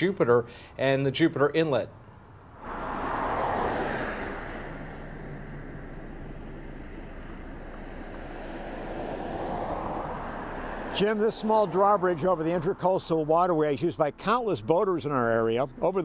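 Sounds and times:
passing cars: 0:02.0 - 0:16.0.

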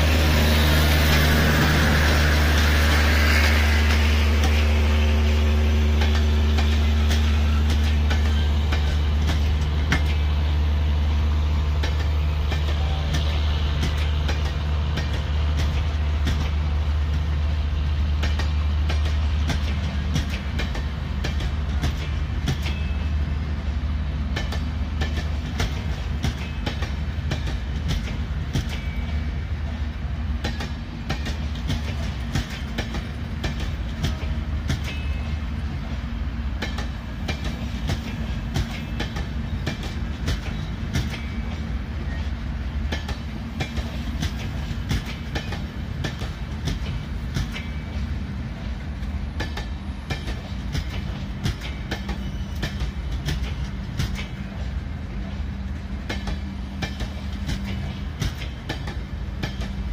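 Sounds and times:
train wheels clacking over rail joints: 0:00.0 - 0:23.5, 0:24.2 - 0:59.9.

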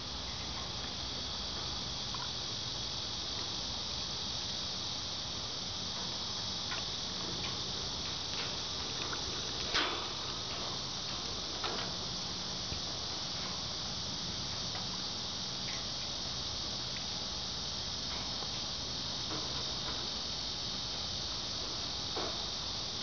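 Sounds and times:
high-pitched insect chorus: 0:00.0 - 0:23.0
faint ticks: 0:00.3 - 0:02.4, 0:05.9 - 0:17.3, 0:18.0 - 0:23.0.

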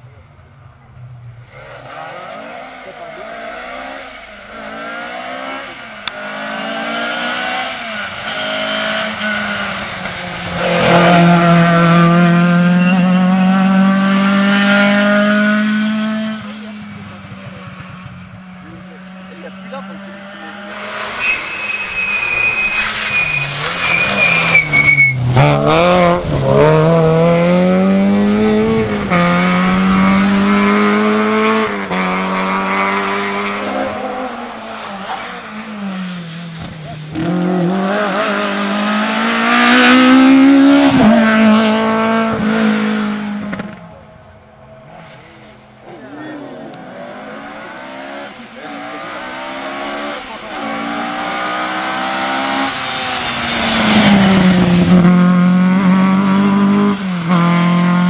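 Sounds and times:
rally car engines revving: 0:00.0 - 0:58.0.

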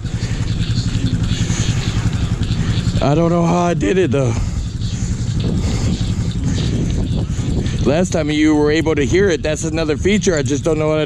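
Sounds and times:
dirt bike engine idling: 0:00.0 - 0:11.0.

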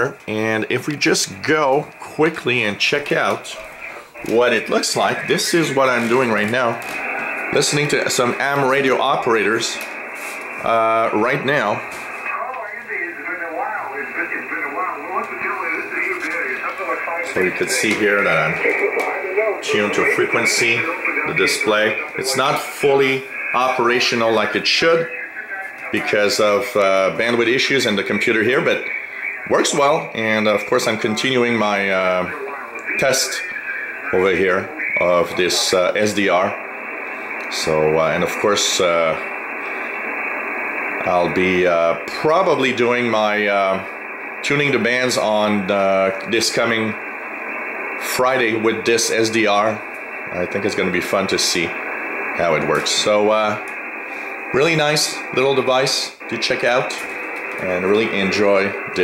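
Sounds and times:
radio voice through a speaker: 0:00.0 - 0:59.0.

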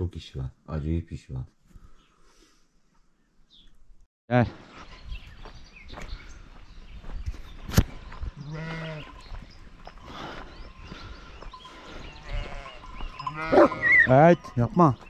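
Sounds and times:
sheep bleating: 0:08.4 - 0:09.2, 0:12.1 - 0:14.2.

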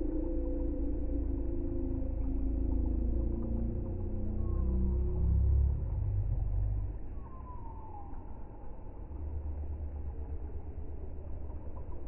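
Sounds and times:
low deep rumble: 0:00.0 - 0:12.0.

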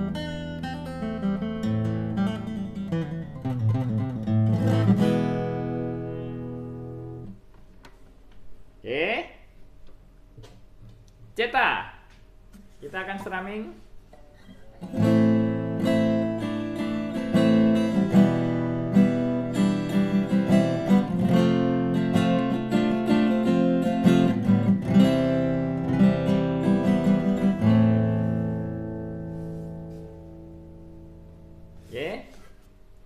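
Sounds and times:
acoustic guitar strumming chords: 0:00.0 - 0:07.4, 0:14.1 - 0:31.9.

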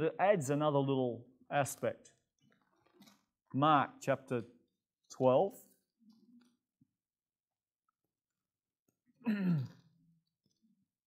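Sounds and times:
man sighing: 0:09.2 - 0:09.8.

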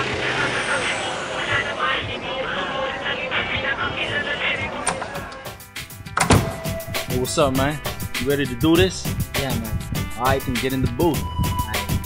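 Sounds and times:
background voices: 0:00.0 - 0:05.6
steady noise: 0:00.0 - 0:05.7.

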